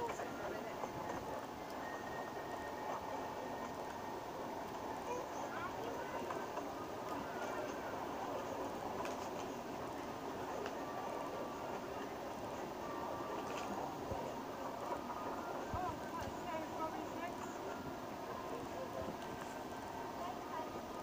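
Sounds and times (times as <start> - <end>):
small train running: 0.0 - 21.0.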